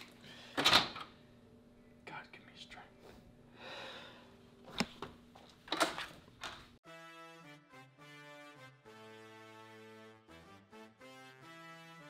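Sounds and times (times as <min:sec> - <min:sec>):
low room hum: 0:00.0 - 0:06.8.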